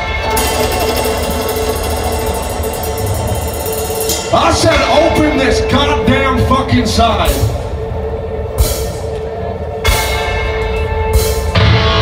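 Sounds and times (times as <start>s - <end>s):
metal band playing live: 0.0s - 12.0s.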